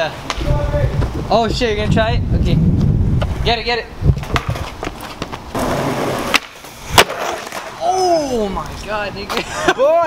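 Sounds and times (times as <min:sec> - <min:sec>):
skateboard wheels rolling: 0:02.7 - 0:09.4
skateboard knocks on concrete: 0:04.2 - 0:05.4
skateboard crashing on pavement: 0:04.2 - 0:07.8.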